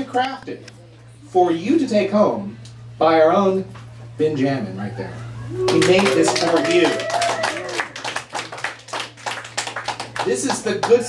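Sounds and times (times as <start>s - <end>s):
audience clapping: 5.7s - 11.0s.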